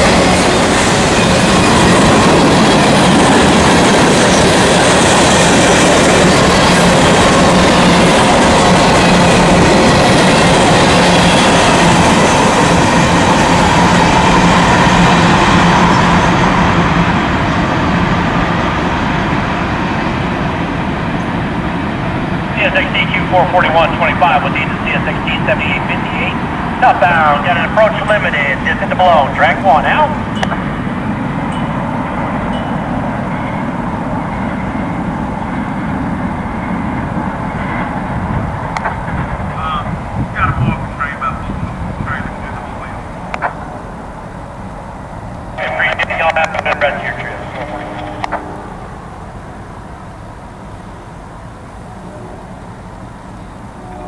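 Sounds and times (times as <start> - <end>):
diesel locomotive rumbling: 0.0 - 54.0
train cars rolling on rails: 0.0 - 54.0
voice over scanner radio: 22.5 - 30.2, 39.6 - 43.6, 45.6 - 48.3.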